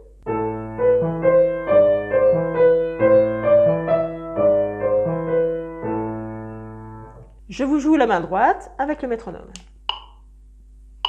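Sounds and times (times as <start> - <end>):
grand piano playing slowly: 0.0 - 7.2.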